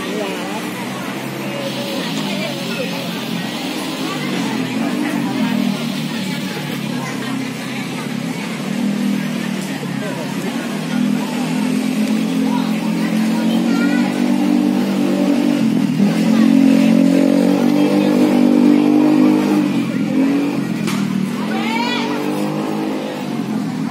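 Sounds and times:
engine droning: 0.0s - 23.9s
people's voices: 0.0s - 23.9s.

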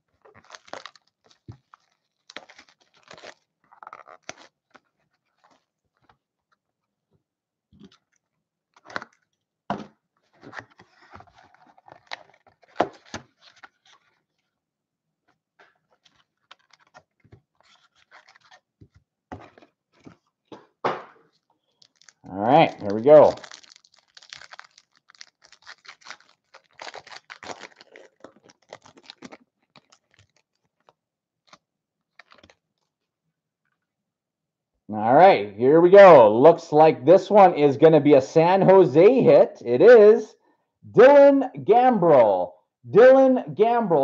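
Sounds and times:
cardboard tearing: 0.3s - 5.7s, 15.9s - 18.7s, 22.8s - 30.7s.

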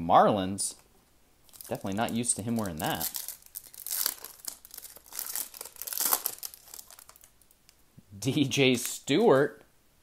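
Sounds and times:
wrapper crinkling and tearing: 1.4s - 7.8s.

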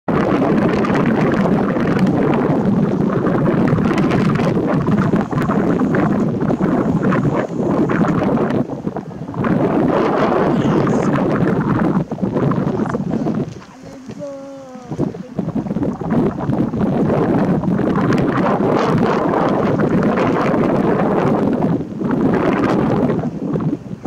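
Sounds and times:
wind buffeting microphone: 0.1s - 24.0s.

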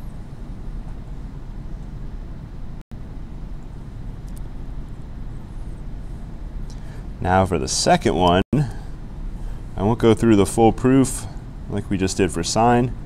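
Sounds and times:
low room noise rumble: 0.0s - 13.0s.

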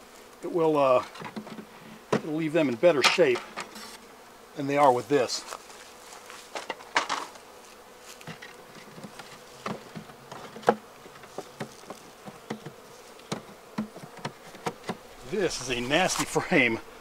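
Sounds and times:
honeybees buzzing: 0.0s - 17.0s.

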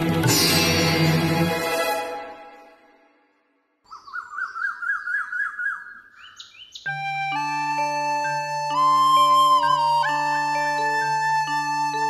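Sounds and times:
bird chirping: 3.8s - 11.1s
soft music with held tones: 6.9s - 12.0s.

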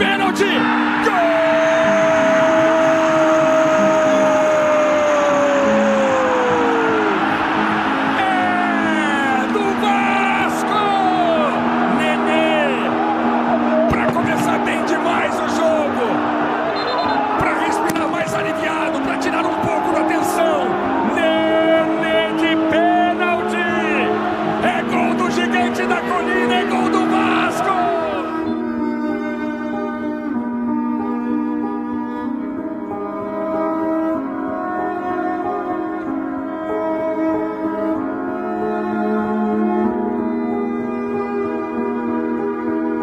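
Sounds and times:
long drawn-out goal cry: 0.0s - 28.8s
background music: 0.0s - 43.0s.

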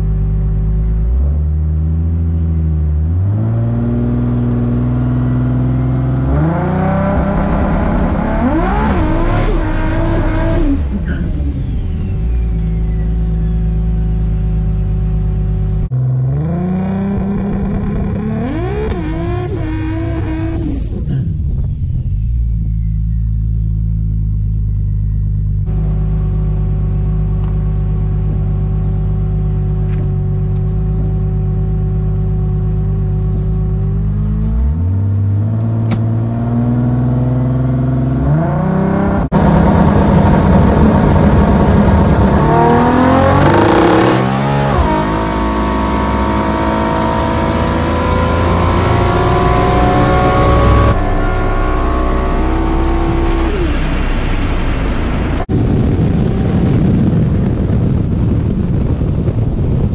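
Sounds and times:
car engine idling and revving: 0.0s - 59.9s
car accelerating through gears: 3.1s - 13.1s, 31.3s - 55.5s.

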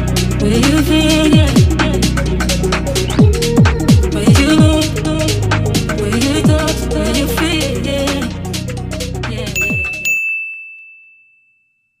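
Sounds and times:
background music: 0.0s - 10.1s
high bell-like ding: 9.6s - 12.0s.

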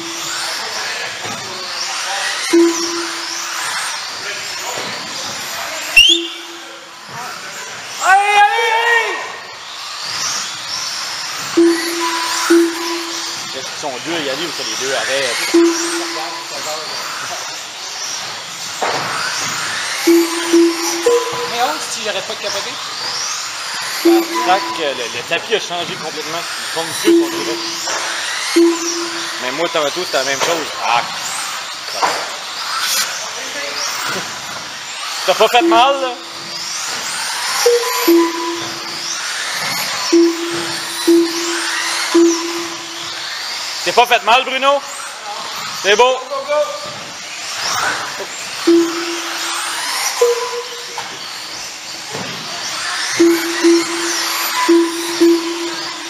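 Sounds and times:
rc car motor whine: 0.0s - 56.0s
low steady tone: 2.6s - 3.5s, 11.6s - 13.5s, 15.5s - 16.6s, 20.1s - 21.6s, 24.1s - 25.2s, 27.0s - 29.4s, 37.7s - 39.0s, 40.1s - 43.2s, 48.7s - 51.0s, 53.2s - 56.0s.

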